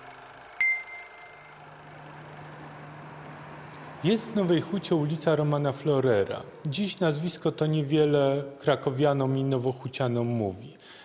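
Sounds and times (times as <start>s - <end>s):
metallic bell ding: 0.6s - 1.6s.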